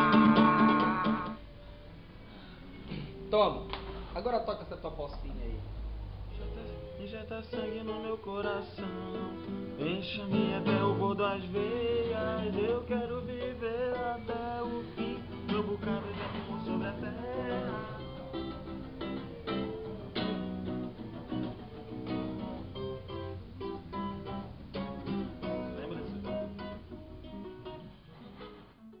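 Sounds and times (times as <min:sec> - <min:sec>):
acoustic guitar plucked: 0:00.0 - 0:04.2, 0:05.8 - 0:29.0.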